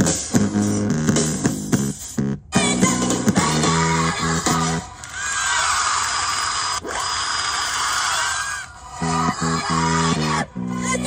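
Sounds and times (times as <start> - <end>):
chopped stuttering beat: 0.0 - 4.9.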